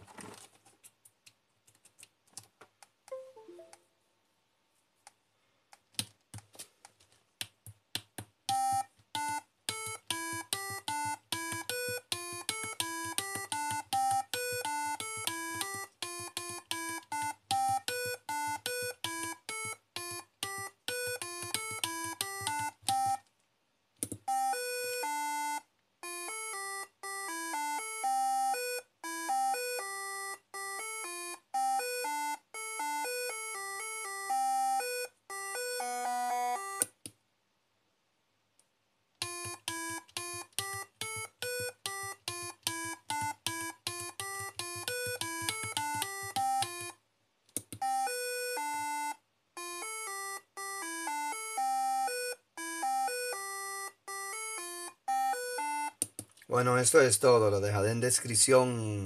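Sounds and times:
electronic beep melody: 3.1s - 3.8s, 47.8s - 56.0s.

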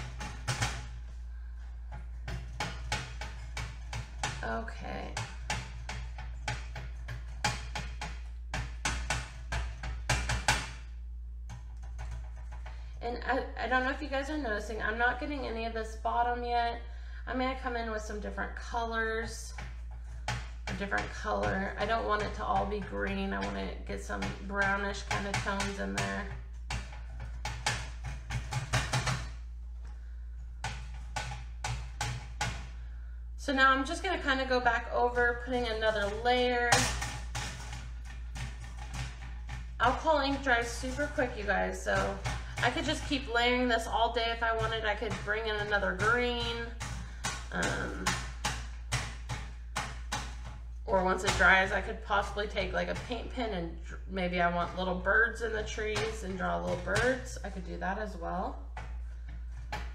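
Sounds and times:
felt pad tapping on metal: 0.0s - 1.0s, 1.9s - 10.8s, 24.2s - 29.4s, 30.6s - 32.8s, 35.9s - 53.1s
steady low hum: 0.0s - 59.9s.

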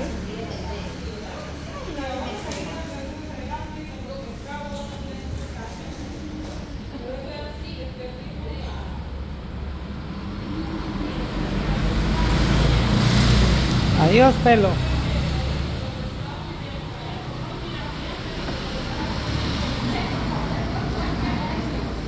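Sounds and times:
road traffic rumble: 0.0s - 22.0s
vehicle passing: 9.2s - 22.0s.

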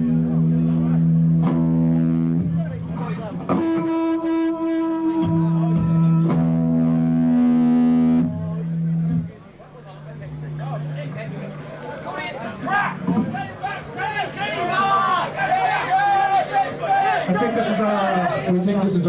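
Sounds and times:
distorted electric guitar and bass: 0.0s - 14.0s.

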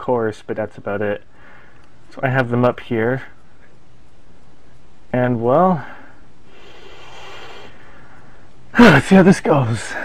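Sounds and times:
steady background hiss: 0.0s - 10.0s
man breathing out: 6.5s - 8.4s.

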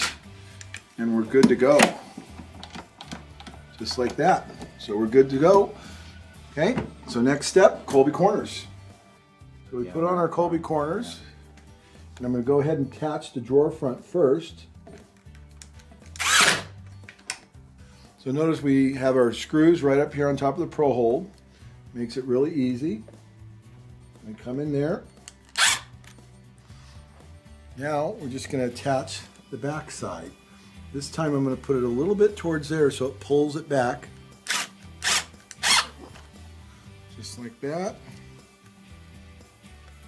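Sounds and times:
background music: 0.0s - 40.0s
cordless drill driving screw: 16.1s - 16.7s, 25.4s - 25.9s, 34.4s - 36.0s.

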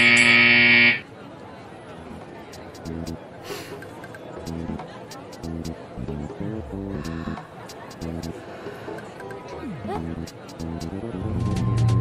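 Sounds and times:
scoreboard buzzer blast: 0.0s - 1.0s
background voices: 6.6s - 11.0s.

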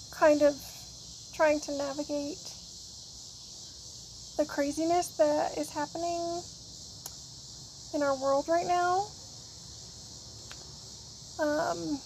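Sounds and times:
cicadas buzzing: 0.0s - 12.0s.

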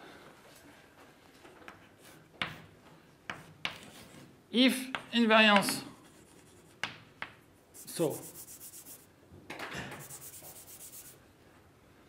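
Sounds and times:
chalk taps on blackboard: 2.4s - 2.6s, 3.3s - 3.9s, 4.9s - 5.9s, 6.7s - 7.4s, 9.9s - 11.1s
chalk scratching on blackboard: 6.0s - 7.0s, 7.7s - 9.1s, 10.0s - 11.2s.

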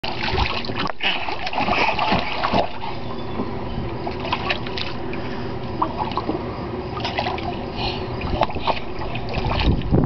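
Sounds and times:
water splashing in paddling pool: 0.0s - 10.0s.

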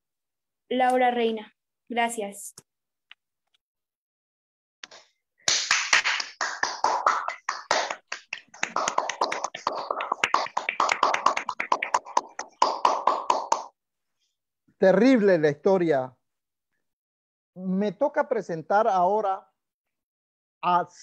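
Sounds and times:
people clapping: 4.8s - 13.8s.

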